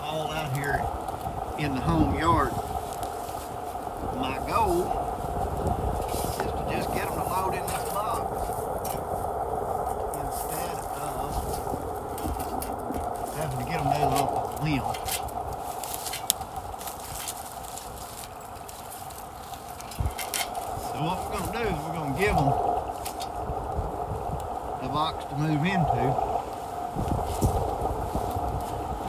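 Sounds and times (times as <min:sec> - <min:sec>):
muffled talk: 0:00.0 - 0:02.7, 0:04.0 - 0:05.2, 0:06.2 - 0:09.0, 0:10.0 - 0:11.8, 0:13.2 - 0:15.2, 0:20.0 - 0:23.2, 0:24.8 - 0:26.4
steady hum: 0:00.0 - 0:29.0.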